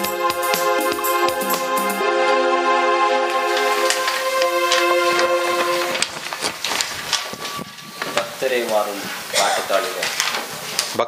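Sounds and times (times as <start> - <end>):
group singing carols: 0.0 - 9.5
crackling noise: 3.2 - 11.0.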